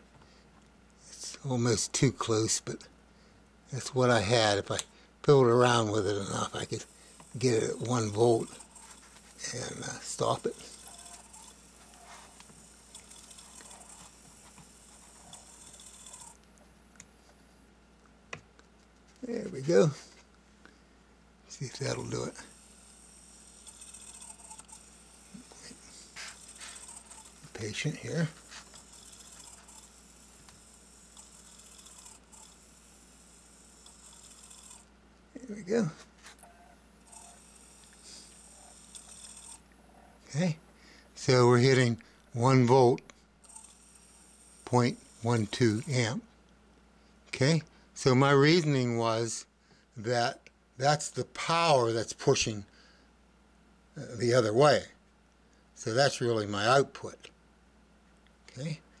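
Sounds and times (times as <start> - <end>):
electric motor whine: 5.6 - 16.5, 21.5 - 34.9, 36.4 - 39.8, 43.4 - 46.2.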